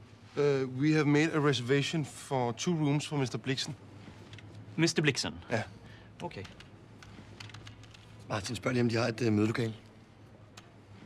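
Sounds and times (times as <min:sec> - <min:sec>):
computer keyboard typing: 0:06.4 - 0:08.1.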